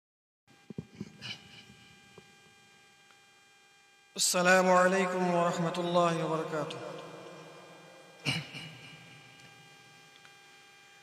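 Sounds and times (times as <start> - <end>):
faint electrical hum: 0.5 - 11.0.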